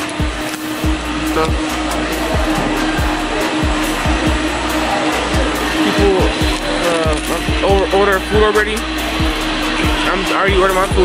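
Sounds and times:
food court crowd din: 0:00.0 - 0:11.0
music with bass beat: 0:00.0 - 0:11.0.

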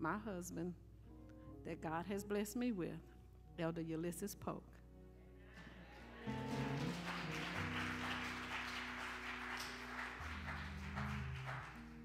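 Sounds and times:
church band music with low chords: 0:05.2 - 0:12.0.

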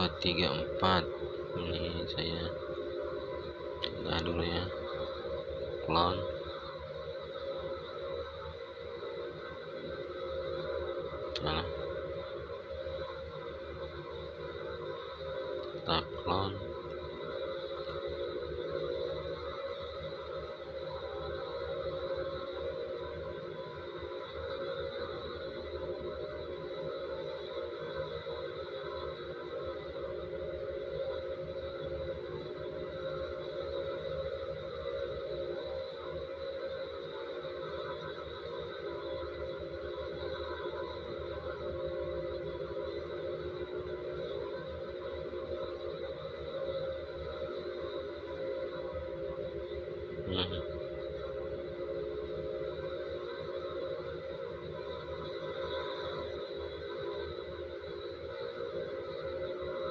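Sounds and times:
drone of held tones: 0:00.0 - 0:59.9.

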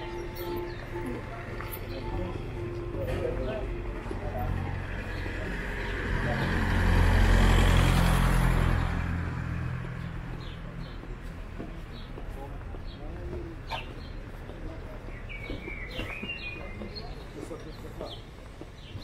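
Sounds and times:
vehicle passing on road: 0:00.0 - 0:13.3
bird chirps: 0:14.9 - 0:19.0.

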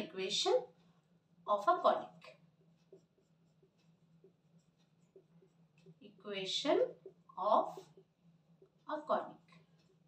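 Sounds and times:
faint low hum: 0:00.0 - 0:10.0
marker squeaking on whiteboard: 0:02.2 - 0:06.0.

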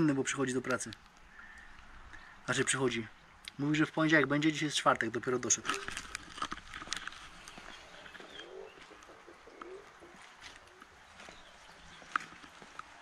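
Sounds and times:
light hiss of rain: 0:00.0 - 0:11.8
pigeon cooing: 0:07.5 - 0:12.4.

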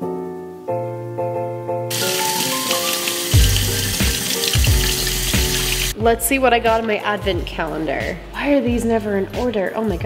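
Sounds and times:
piano music with deep beat: 0:00.0 - 0:09.5
tap water splashing on strainer: 0:01.9 - 0:06.0.

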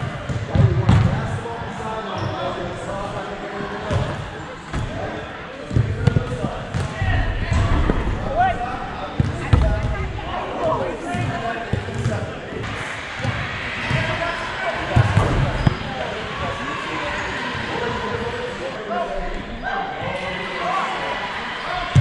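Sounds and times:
players shouting: 0:01.4 - 0:22.0.

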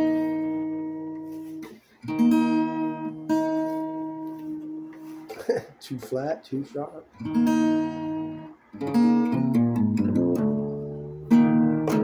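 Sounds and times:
acoustic guitar chords strummed: 0:00.0 - 0:05.2, 0:07.1 - 0:12.0.

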